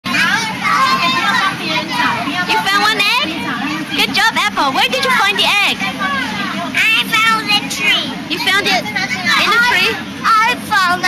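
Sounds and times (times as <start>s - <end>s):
young children talking and calling out: 0.1s - 11.0s.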